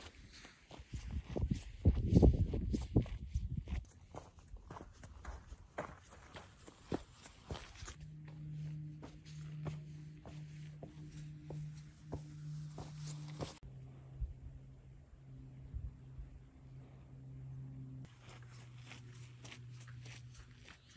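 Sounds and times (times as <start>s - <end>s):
footsteps on dirt trail: 0.0s - 13.6s, 18.1s - 20.9s
low hum: 0.0s - 20.9s.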